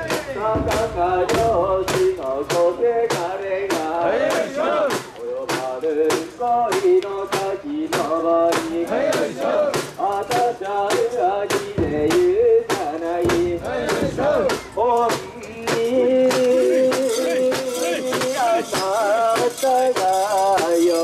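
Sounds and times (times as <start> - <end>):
rhythmic wooden clacks: 0.0 - 21.0
group chanting in unison: 0.1 - 19.0.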